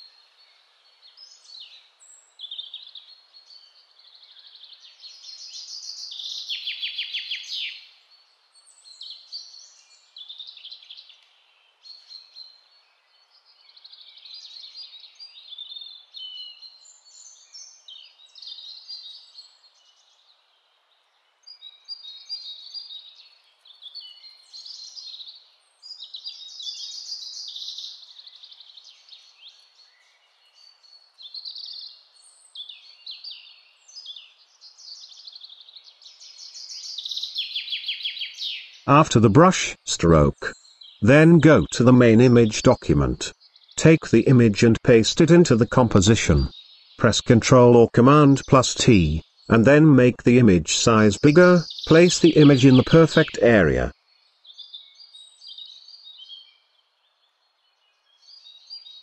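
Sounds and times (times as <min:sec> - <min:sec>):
birds chirping and singing: 0:00.8 - 0:07.9, 0:08.5 - 0:20.2, 0:21.5 - 0:59.0.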